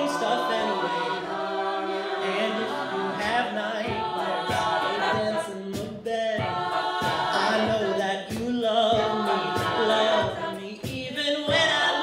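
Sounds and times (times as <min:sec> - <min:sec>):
a cappella group singing: 0:00.0 - 0:12.0
vocal percussion hits: 0:03.1 - 0:12.0.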